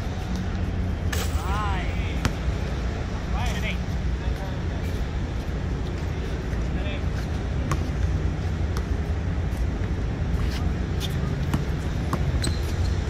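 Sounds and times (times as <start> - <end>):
basketball bouncing on hard court: 11.4 - 12.8.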